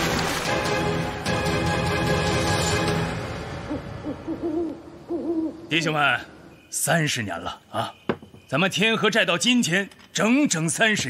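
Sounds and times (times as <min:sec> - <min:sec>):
owl hooting: 0:03.7 - 0:05.8.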